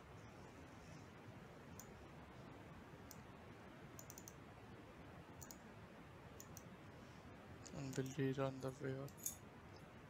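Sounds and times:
room hiss: 0.0 - 10.0
computer mouse clicks: 4.0 - 4.4, 5.4 - 5.6, 6.4 - 6.7.

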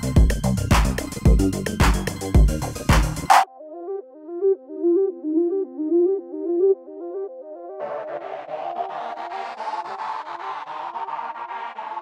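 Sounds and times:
deep bass notes: 0.0 - 3.3
electronic beat music: 0.0 - 12.0.

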